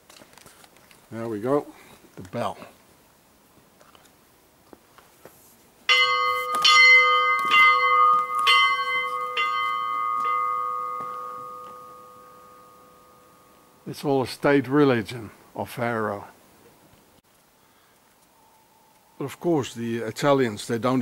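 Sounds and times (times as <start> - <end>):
small church bell ringing: 5.9 - 13.8.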